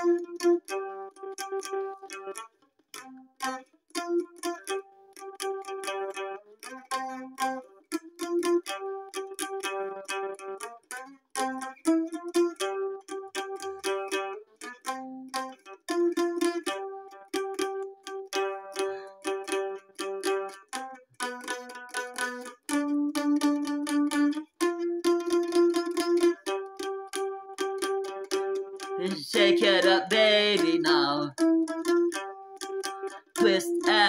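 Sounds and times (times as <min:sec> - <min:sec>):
mandolin melody: 0:00.0 - 0:34.0.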